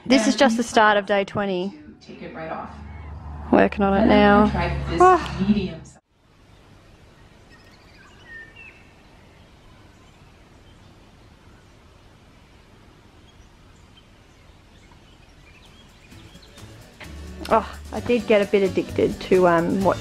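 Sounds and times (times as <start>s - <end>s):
faint outdoor woodland ambience: 6.0s - 19.8s
bird chirps: 6.5s - 11.8s, 13.2s - 16.9s.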